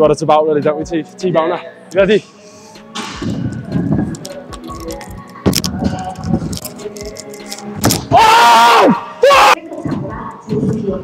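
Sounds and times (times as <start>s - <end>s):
rattling clicks: 3.0s - 8.0s.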